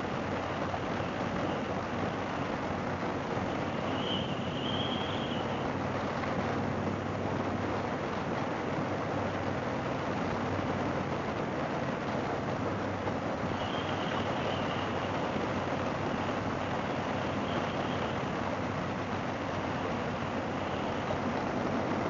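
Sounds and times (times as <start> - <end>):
wind rush on microphone: 0.0 - 22.0.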